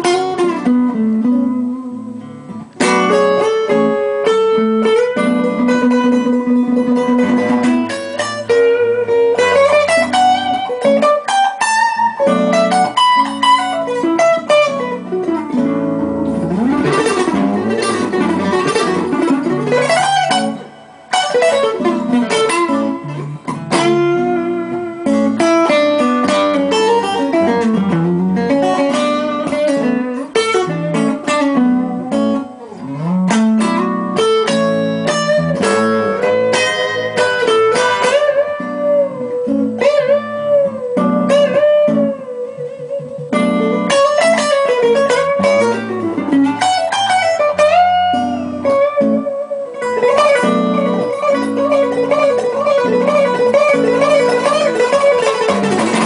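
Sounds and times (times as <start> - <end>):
guitar single-note melody: 0.0 - 56.0
looped bass and chord backing: 0.0 - 56.0.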